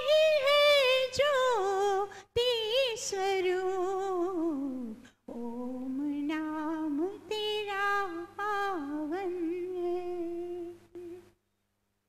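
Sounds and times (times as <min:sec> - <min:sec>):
woman singing wordless melody: 0:00.0 - 0:11.4.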